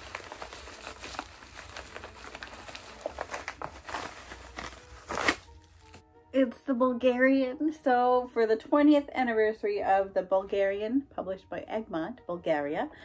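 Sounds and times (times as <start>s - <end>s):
book pulled out rustle: 0.0s - 6.0s
plastic mailer crinkling and tearing: 0.0s - 6.0s.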